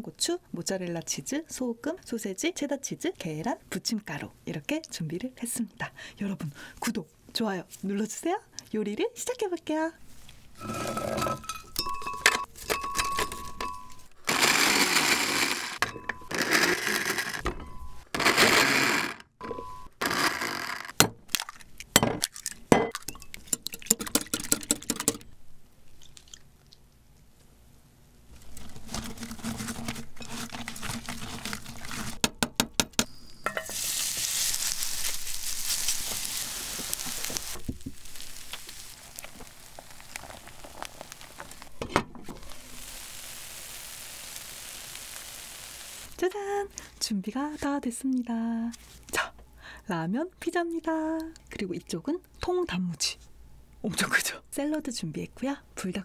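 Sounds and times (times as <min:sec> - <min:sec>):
utensils clinking on glass bowl: 0:10.6 - 0:14.1
blender crushing noodles: 0:14.2 - 0:17.4, 0:18.2 - 0:19.3, 0:20.0 - 0:20.9
food sizzling in a pan: 0:33.5 - 0:46.2.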